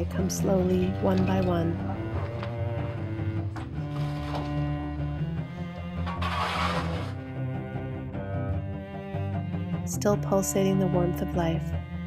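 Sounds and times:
cello music: 0:00.0 - 0:12.0.

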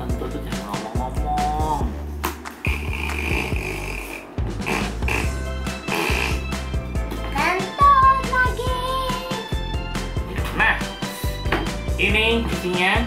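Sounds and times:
background music with beat: 0:00.0 - 0:13.0
child exclaiming: 0:07.4 - 0:09.4.

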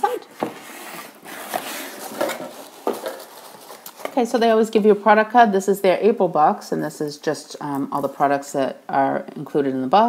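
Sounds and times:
cardboard and tissue paper rustling: 0:00.0 - 0:04.4.

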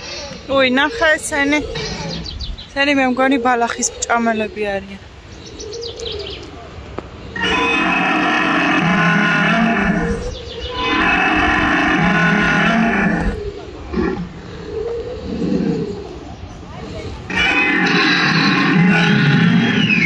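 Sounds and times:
recorded dinosaur roars: 0:07.4 - 0:16.2, 0:17.2 - 0:20.0.

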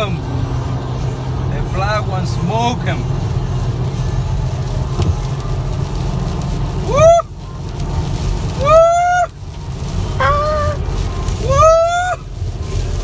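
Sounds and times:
car road and engine rumble: 0:00.0 - 0:13.0
person whooping: 0:06.9 - 0:07.3, 0:08.6 - 0:09.4, 0:10.2 - 0:10.8, 0:11.4 - 0:12.2.

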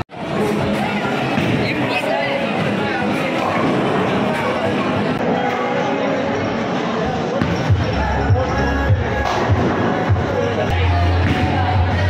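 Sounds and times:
chatter: 0:00.0 - 0:12.0
music with thumping beat: 0:07.4 - 0:12.0.

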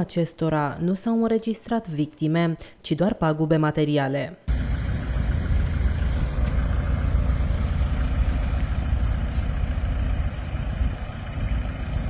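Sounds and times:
truck engine idling: 0:04.5 - 0:12.0.

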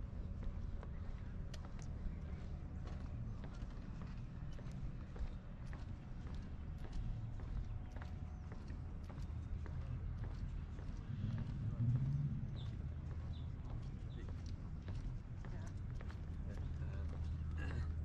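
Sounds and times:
low voices: 0:16.4 - 0:18.0.

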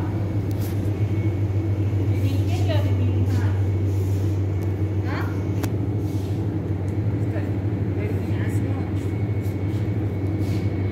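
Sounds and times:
low hum: 0:00.0 - 0:10.9.

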